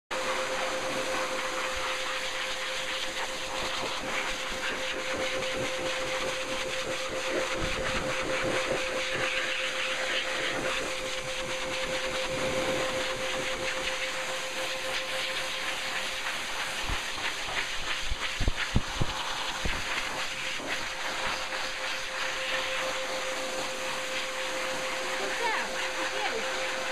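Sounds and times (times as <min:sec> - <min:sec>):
blow dryer running: 0:00.1 - 0:26.9
air buffeting the microphone: 0:16.8 - 0:20.8.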